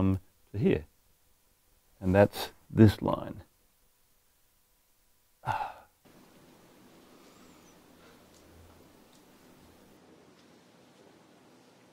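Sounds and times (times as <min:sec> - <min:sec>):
man sighing: 0:05.4 - 0:06.0.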